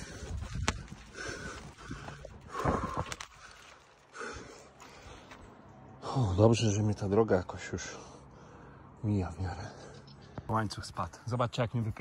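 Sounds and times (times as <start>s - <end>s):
footsteps on dirt trail: 0.0s - 5.6s
man breathing hard: 0.0s - 5.6s.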